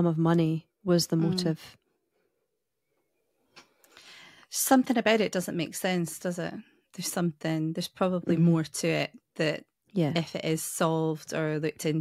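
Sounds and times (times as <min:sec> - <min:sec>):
person murmuring: 0:01.2 - 0:01.6.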